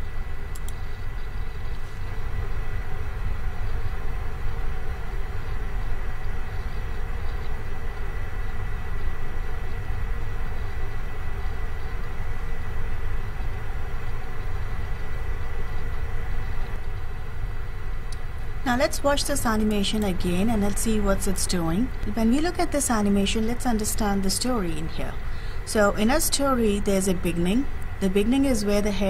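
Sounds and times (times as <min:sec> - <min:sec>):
low rumble and hiss: 0:00.0 - 0:29.0.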